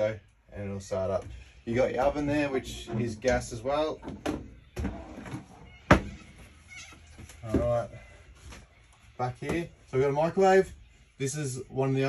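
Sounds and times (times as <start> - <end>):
lid creaking and scraping: 2.0 - 7.0.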